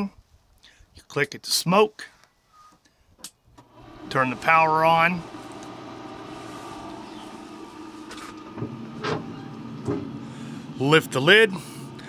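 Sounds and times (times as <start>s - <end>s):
fan motor humming: 3.6s - 12.0s.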